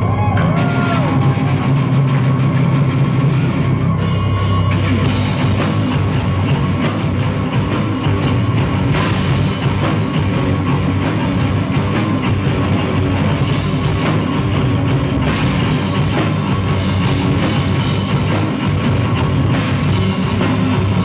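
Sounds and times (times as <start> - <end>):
heavy rock band playing live: 0.0 - 21.0.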